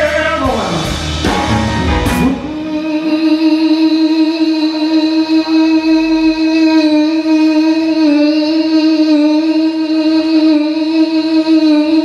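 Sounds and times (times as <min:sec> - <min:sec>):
electric guitar long note: 0:00.0 - 0:11.0.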